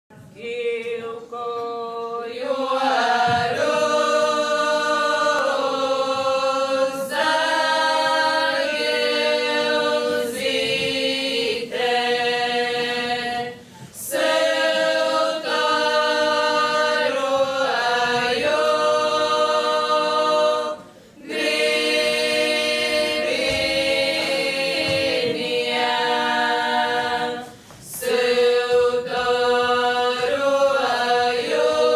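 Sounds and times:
women singing unaccompanied: 0.1 - 31.9.

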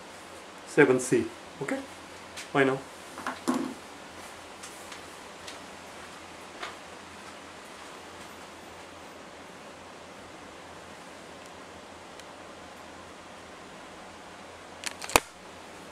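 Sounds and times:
recording hiss: 0.0 - 15.9.

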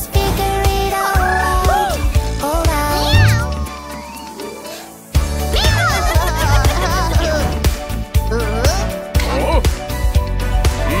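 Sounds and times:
children's song music: 0.0 - 11.0
cartoon cat meow: 2.9 - 4.4, 5.5 - 6.2.

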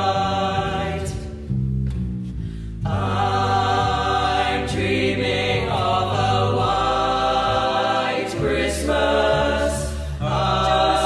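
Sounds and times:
boys singing in harmony: 0.0 - 1.3, 2.9 - 11.0.

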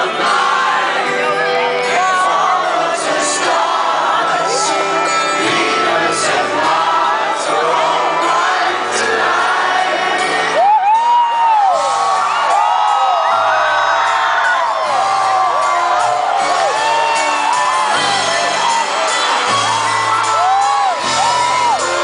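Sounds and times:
audience whooping and screaming: 10.4 - 22.0
live rock band: 14.0 - 22.0.

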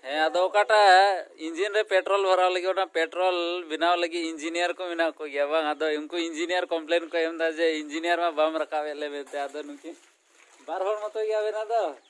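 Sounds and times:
person talking: 10.7 - 12.0.

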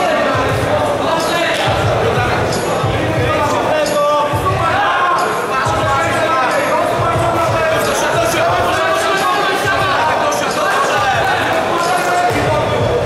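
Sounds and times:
people shouting in a hall: 0.0 - 13.0.

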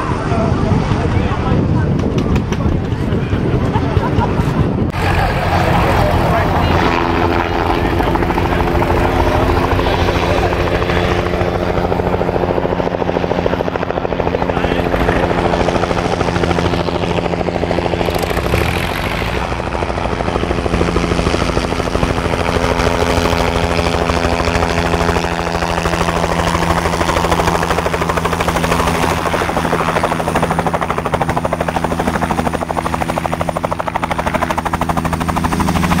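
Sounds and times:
helicopter engine and rotor: 0.0 - 36.0.

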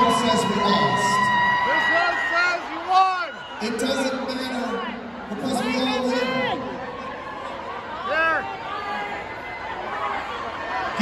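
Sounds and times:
crowd chattering in a hall: 0.0 - 11.0.

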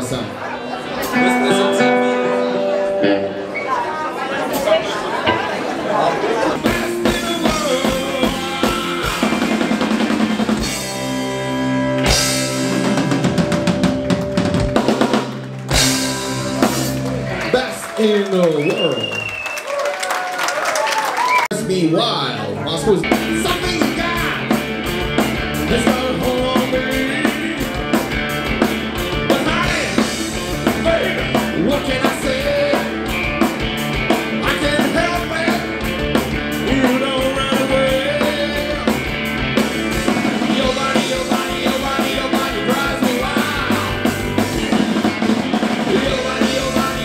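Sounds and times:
electric guitars: 0.0 - 18.7, 22.4 - 47.0
electric bass: 1.0 - 3.6, 6.5 - 17.6, 21.5 - 47.0
drum kit beat: 6.5 - 17.6, 23.0 - 47.0.

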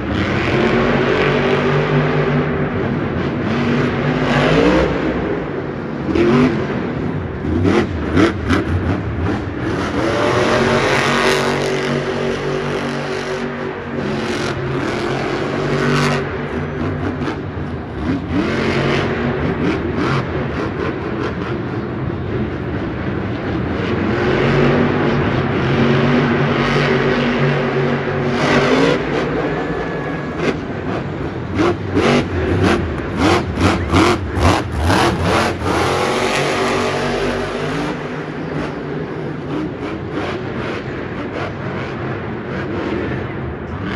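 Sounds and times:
monster truck engine revving: 0.0 - 43.9.

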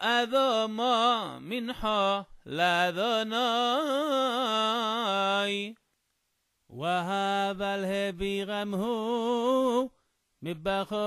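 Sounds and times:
man chanting: 0.0 - 5.8, 6.7 - 11.0.

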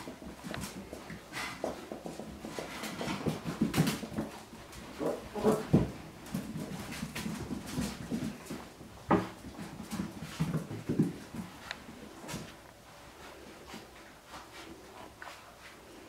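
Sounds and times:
paws clicking on floor: 0.0 - 16.0.

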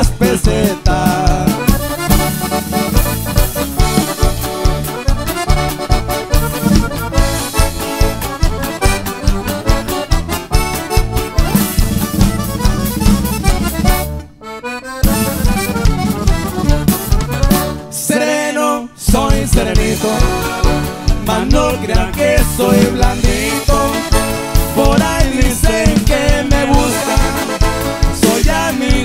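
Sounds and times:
drum kit: 0.0 - 14.4, 15.0 - 17.9, 19.0 - 29.0
electric bass: 0.0 - 18.1, 18.9 - 29.0
button accordion melody: 0.0 - 29.0
guitar: 0.0 - 29.0.

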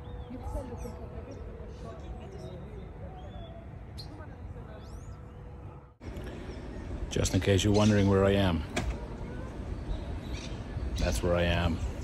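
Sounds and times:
faint bird chirp: 0.0 - 12.0.

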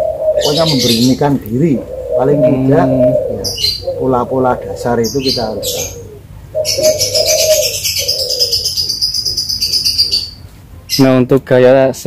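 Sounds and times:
dove cooing: 0.0 - 11.0
high fast-pulsing bird trill: 0.4 - 11.3.

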